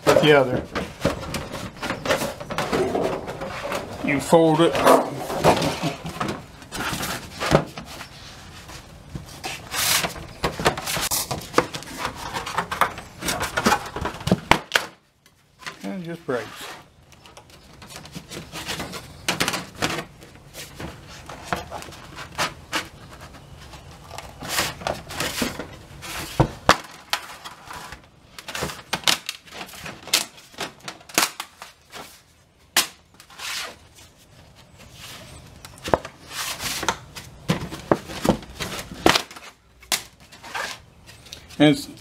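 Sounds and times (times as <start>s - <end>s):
aluminum sheet crackling as bent: 17.2s - 33.9s, 35.7s - 40.8s.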